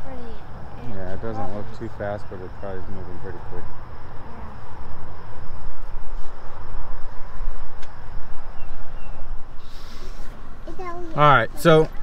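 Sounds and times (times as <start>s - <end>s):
wind noise on microphone: 4.2s - 10.3s.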